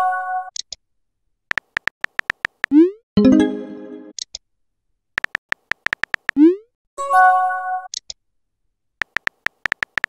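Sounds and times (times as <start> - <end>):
keyboard typing taps: 1.5 - 2.8, 5.2 - 6.4, 9.0 - 10.0.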